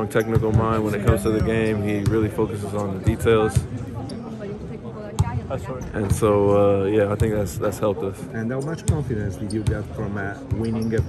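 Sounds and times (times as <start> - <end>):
chatter of voices: 0.0 - 11.0
basketball bouncing on court: 9.6 - 11.0.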